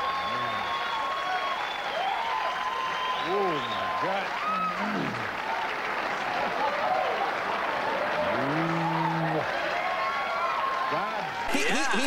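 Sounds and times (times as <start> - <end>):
whoops: 0.0 - 5.2, 8.1 - 11.2
audience applauding and cheering: 0.0 - 12.0
man holding a long ooh: 8.2 - 9.5.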